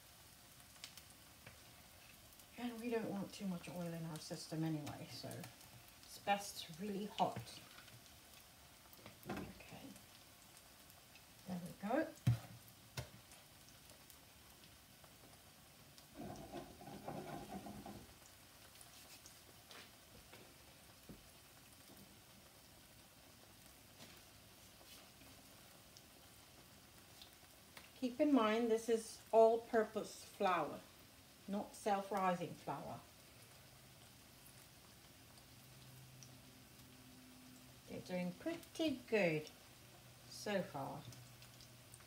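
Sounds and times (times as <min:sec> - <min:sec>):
fritters sizzling in hot oil: 0:00.0 - 0:42.0.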